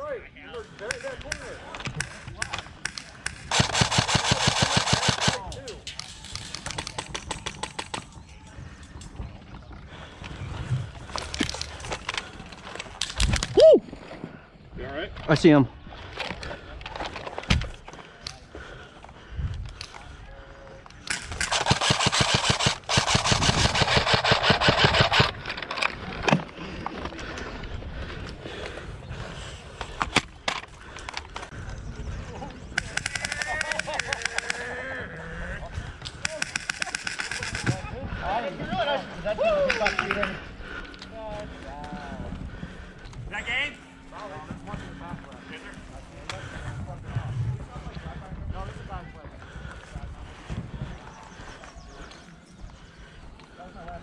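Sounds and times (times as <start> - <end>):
airsoft rifle firing bursts: 2.0 - 5.5, 21.1 - 25.4, 32.8 - 34.6, 36.2 - 37.8.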